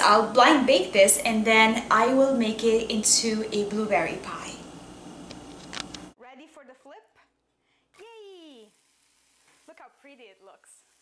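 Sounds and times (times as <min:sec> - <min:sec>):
person speaking: 0:08.0 - 0:08.7
food sizzling in frying pan: 0:08.2 - 0:11.0.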